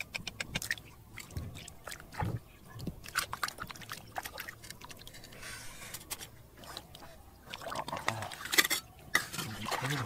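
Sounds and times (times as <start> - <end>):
water splashing: 0.0 - 5.4, 6.6 - 10.0.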